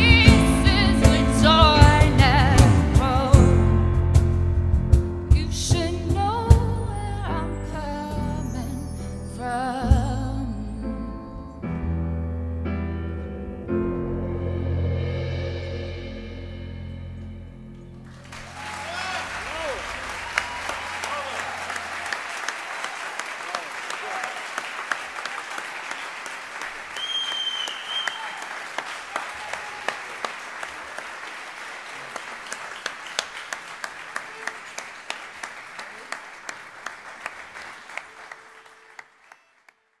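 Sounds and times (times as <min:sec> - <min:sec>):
band's low note ringing: 0:12.7 - 0:21.8
audience applauding and cheering: 0:18.0 - 0:40.0
shouted calls: 0:18.5 - 0:24.4.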